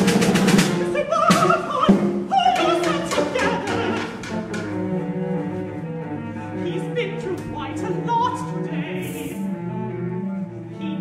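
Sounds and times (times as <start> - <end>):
instrumental ensemble low notes: 0.0 - 11.0.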